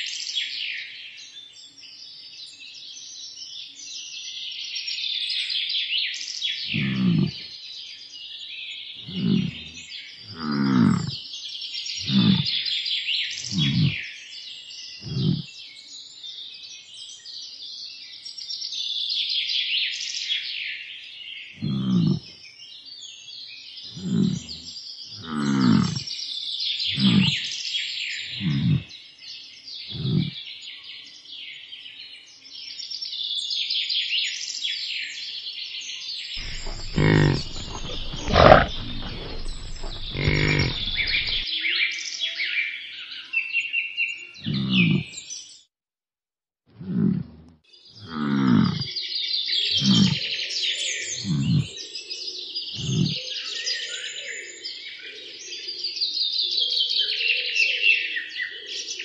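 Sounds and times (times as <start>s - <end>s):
songbirds chirping: 6.2s - 17.1s, 21.0s - 26.2s, 26.8s - 28.9s, 36.4s - 41.4s
low grunts falling in pitch: 6.7s - 7.5s, 9.0s - 11.2s, 12.0s - 12.6s, 13.5s - 14.0s, 15.0s - 15.5s, 21.6s - 22.3s, 23.9s - 26.0s, 26.9s - 27.4s, 28.4s - 28.9s, 29.9s - 30.4s, 36.4s - 41.4s, 46.8s - 48.9s, 51.2s - 51.7s, 52.8s - 53.2s
rough low rumbling: 36.4s - 41.4s.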